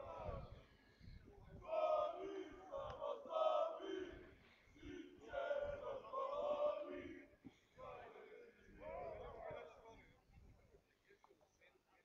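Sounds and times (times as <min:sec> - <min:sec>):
football supporters chanting: 0:00.0 - 0:09.9.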